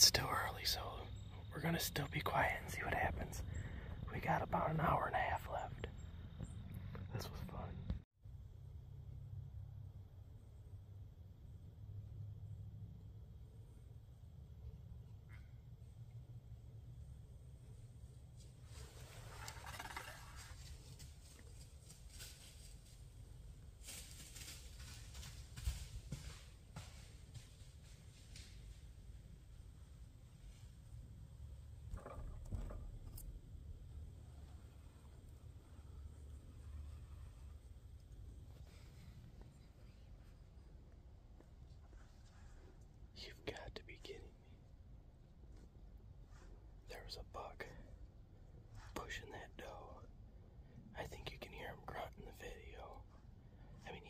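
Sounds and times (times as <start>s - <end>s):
rustling in dry leaves: 18.6s - 28.7s
deer moving through leaves: 18.6s - 28.8s.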